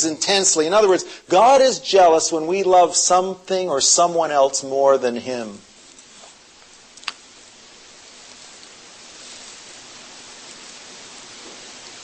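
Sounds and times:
steady recording hiss: 0.0s - 12.0s.

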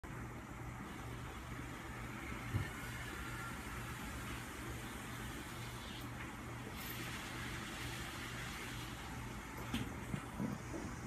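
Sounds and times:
low hum and hiss: 0.0s - 11.0s.

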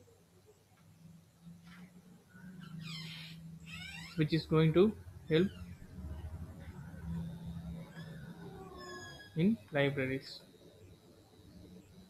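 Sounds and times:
steady low hum: 0.0s - 12.0s
high-pitched wavering squeaks: 7.1s - 9.6s.

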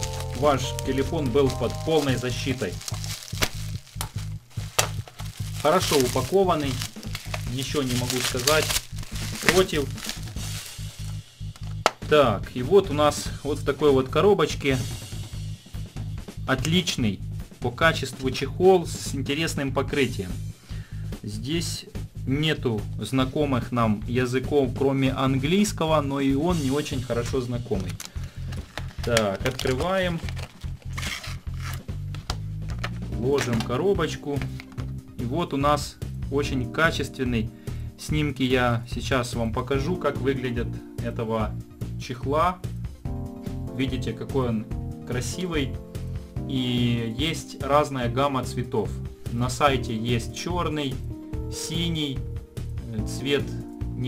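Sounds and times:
bubble wrap crackling: 0.0s - 12.0s, 26.5s - 33.7s
background music with low beat: 0.0s - 54.0s
cardboard rubbing and scraping: 30.3s - 31.8s.

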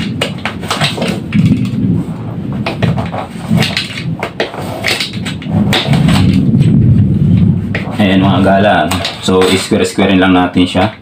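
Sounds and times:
low engine rumble: 5.2s - 9.9s.

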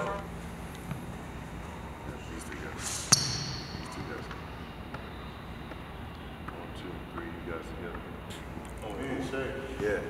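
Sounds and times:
basketball bouncing on gym floor: 3.1s - 6.6s.

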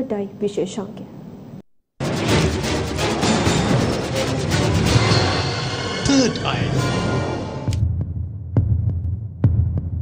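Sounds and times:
low throbbing pulse: 2.0s - 10.0s.

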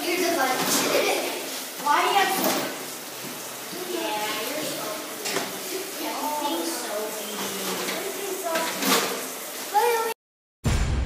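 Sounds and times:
children chattering: 0.0s - 2.8s, 3.6s - 10.2s
tap water running into trough: 0.0s - 10.1s.

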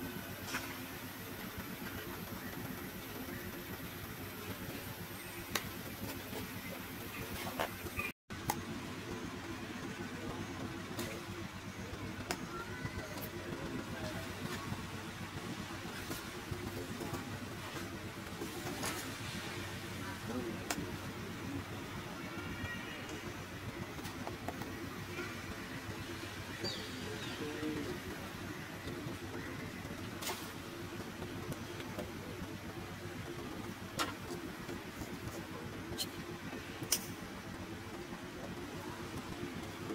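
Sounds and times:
faint constant hum: 0.0s - 39.9s
low background rumble: 0.0s - 39.9s
sharp click: 36.8s - 37.2s.

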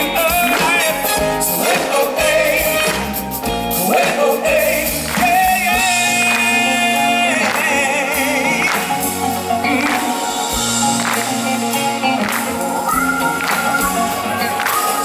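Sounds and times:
live pop band playing: 0.0s - 15.0s
voices singing: 0.0s - 15.0s.

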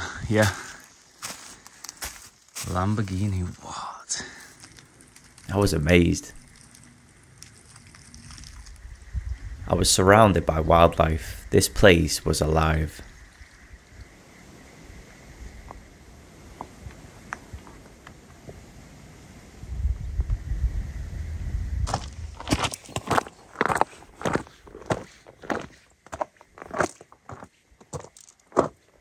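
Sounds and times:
footsteps on gravel: 0.3s - 3.7s, 21.9s - 29.0s.

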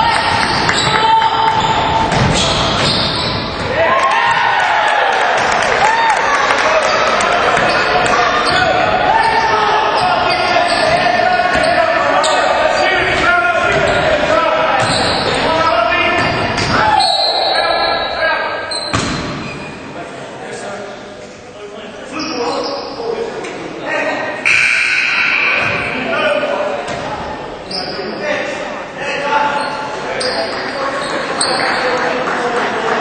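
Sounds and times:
sneakers squeaking: 0.0s - 4.4s, 7.3s - 20.0s, 22.1s - 23.1s, 24.4s - 28.2s, 29.4s - 32.0s
echoing voices: 0.0s - 33.0s.

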